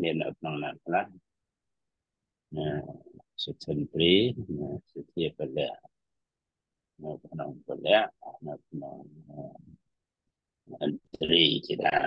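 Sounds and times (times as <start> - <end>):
man speaking: 0.0 - 1.2, 2.5 - 5.9, 7.0 - 9.8, 10.7 - 12.0.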